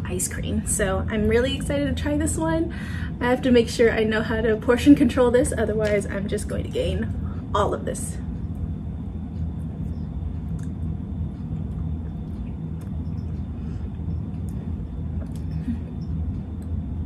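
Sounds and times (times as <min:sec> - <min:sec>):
low background hum: 0:00.0 - 0:17.0.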